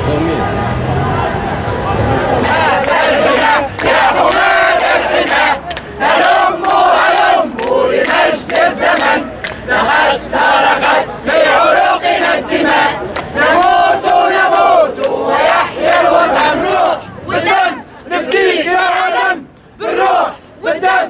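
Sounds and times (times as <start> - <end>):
crowd chanting slogans: 0.0 - 21.0.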